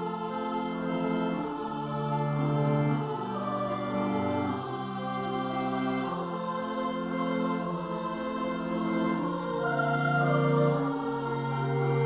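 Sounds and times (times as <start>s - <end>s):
keyboard accompaniment: 0.0s - 12.0s
treble choir singing: 0.0s - 12.0s.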